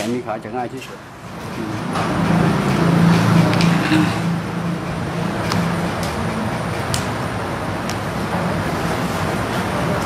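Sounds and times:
engine running low rumble: 1.0s - 10.0s.

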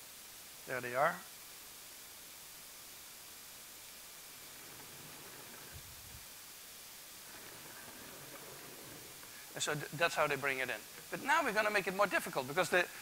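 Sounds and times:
faint background hiss: 0.0s - 13.0s.

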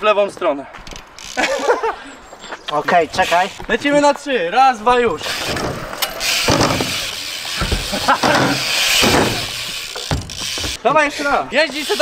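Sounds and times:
bike tyres rolling on concrete: 0.3s - 12.0s.

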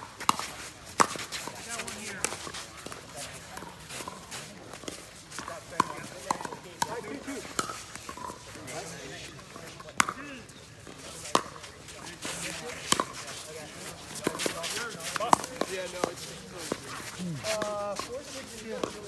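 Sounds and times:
voices talking: 8.2s - 19.0s.

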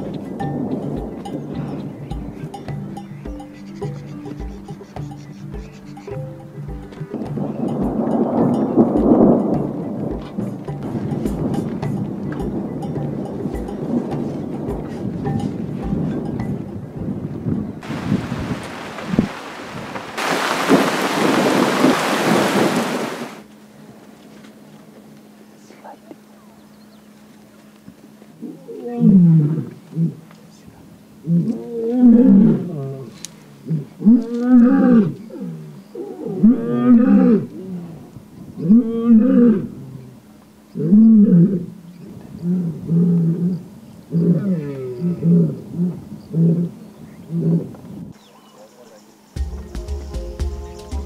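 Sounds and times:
heavy rain falling: 17.8s - 23.4s
lioness roaring: 28.4s - 30.2s, 31.2s - 40.2s, 40.8s - 41.8s, 42.4s - 47.8s.

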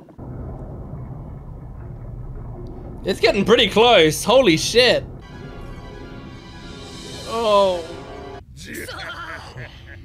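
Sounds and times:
steady low rumble: 0.0s - 8.6s.

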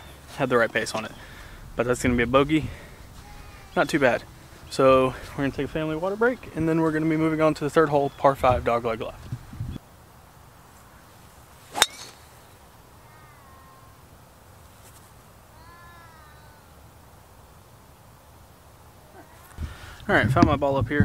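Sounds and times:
golf club striking ball: 11.7s - 12.4s
faint high wavering calls: 11.7s - 17.0s.

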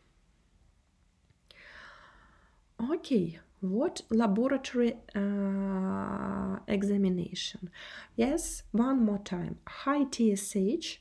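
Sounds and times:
woman speaking: 2.8s - 11.0s.

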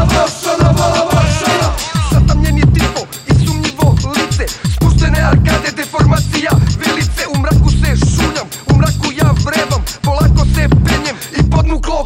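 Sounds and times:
heavy bass beat: 0.0s - 12.0s
man rapping over a beat: 0.0s - 12.0s.

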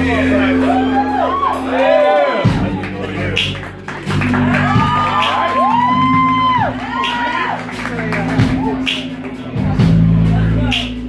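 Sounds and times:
drums: 0.0s - 11.0s
electric bass: 0.0s - 11.0s.

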